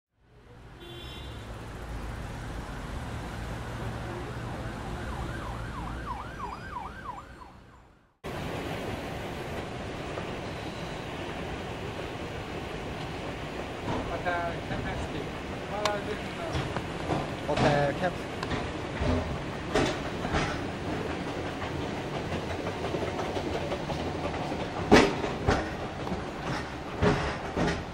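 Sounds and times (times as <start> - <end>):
street traffic rumble: 0.2 - 27.9
emergency vehicle siren yelping: 3.9 - 8.2.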